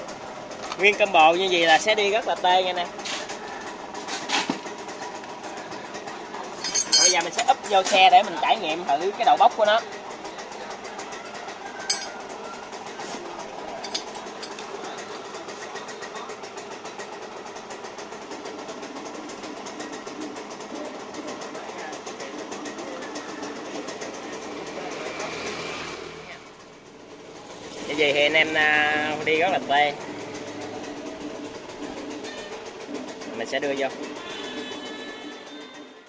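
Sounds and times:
small engine running with clatter: 0.0 - 36.0.

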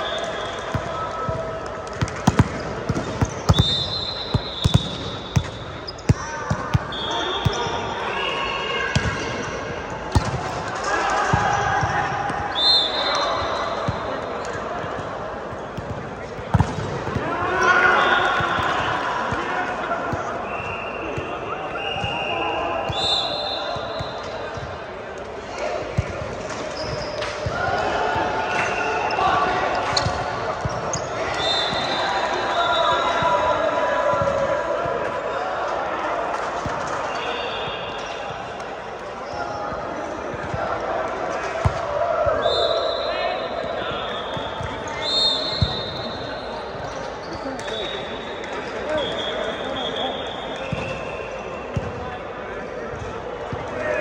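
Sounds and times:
players calling and chattering: 0.0 - 54.0
volleyballs hitting and bouncing: 0.5 - 8.1, 8.9 - 12.6, 13.4 - 20.4, 23.7 - 32.0, 37.9 - 42.4, 51.7 - 52.1
sneaker squeaks on court floor: 2.0 - 10.3, 26.0 - 27.6, 29.8 - 33.3, 42.5 - 52.2.

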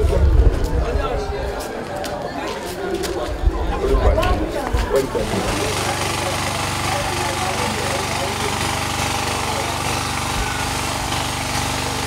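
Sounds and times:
outdoor voices: 0.0 - 12.0
small engine running: 4.9 - 12.0.

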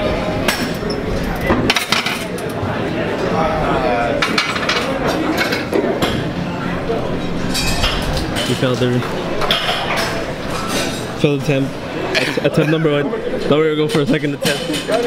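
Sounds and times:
voices: 0.0 - 15.0.

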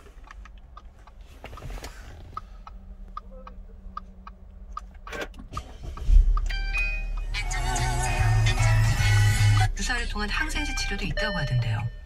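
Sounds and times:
car audio tones: 0.0 - 12.0
car engine starting and idling: 0.0 - 12.0.

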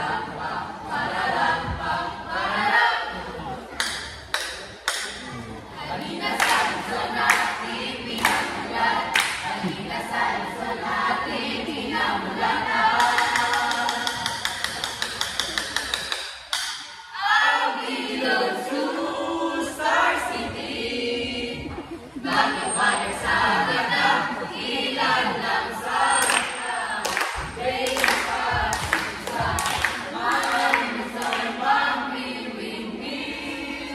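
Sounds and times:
group singing a cappella: 0.0 - 3.7, 5.2 - 15.7, 17.0 - 33.9
sharp claps: 3.8 - 5.3, 6.4 - 7.6, 8.2 - 9.5, 13.0 - 17.0, 26.2 - 31.5.

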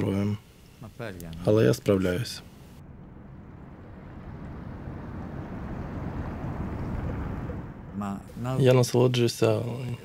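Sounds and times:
car interior road and engine noise: 0.0 - 10.0.

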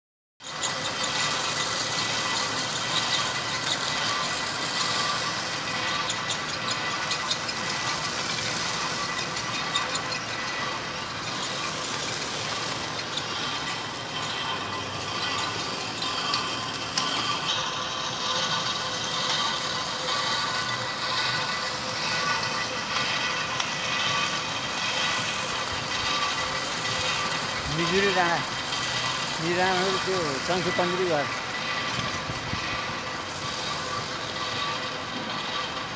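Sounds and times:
high machine whine: 0.4 - 35.9
stone crusher machinery din: 0.4 - 35.9.

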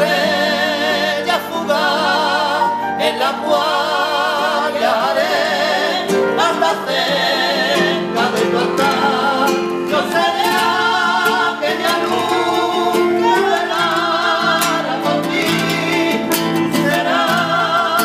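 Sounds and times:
flamenco guitar: 0.0 - 18.0
person singing with vibrato: 0.0 - 18.0.

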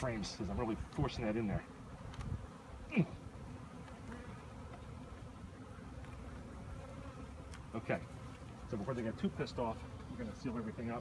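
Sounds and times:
bees buzzing: 0.0 - 11.0.

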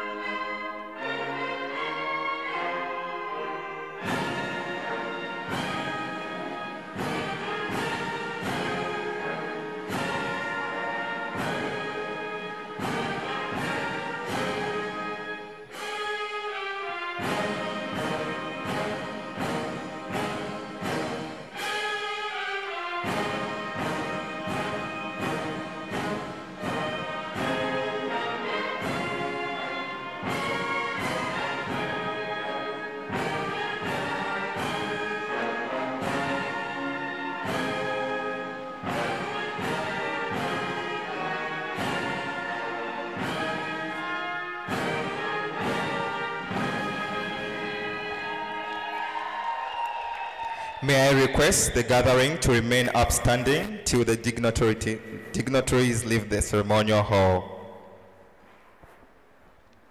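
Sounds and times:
wind band playing slow piece: 0.0 - 49.6.

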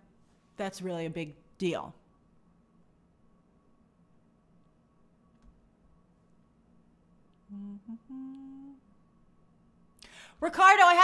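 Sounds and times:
woman humming: 7.4 - 8.9.

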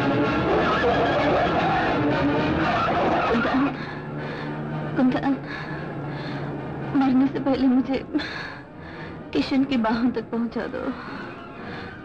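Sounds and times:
car engine driven hard: 0.0 - 5.0.

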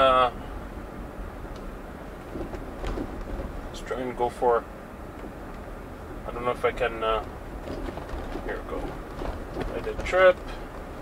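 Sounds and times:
road and tyre noise: 0.0 - 11.0.

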